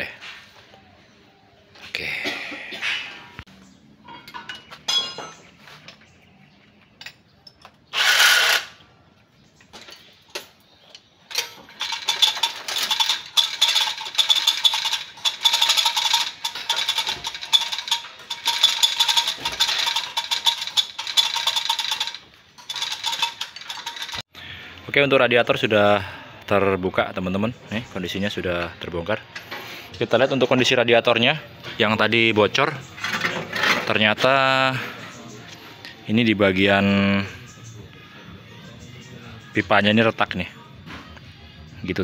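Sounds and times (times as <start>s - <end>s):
metal tools clicking and clinking: 4.0s - 6.1s, 6.9s - 8.7s, 9.6s - 24.3s.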